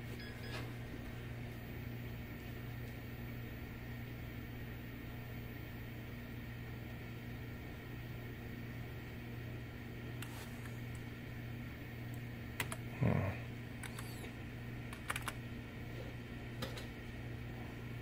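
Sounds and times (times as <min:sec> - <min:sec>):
computer fans humming: 0:00.0 - 0:18.0.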